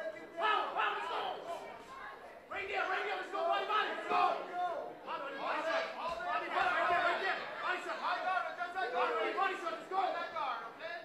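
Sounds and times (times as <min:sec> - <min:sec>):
people shouting and talking: 0:00.0 - 0:11.0.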